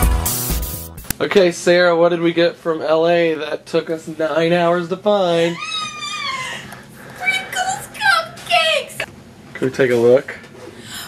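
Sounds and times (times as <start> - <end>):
person squealing: 5.4 - 6.7.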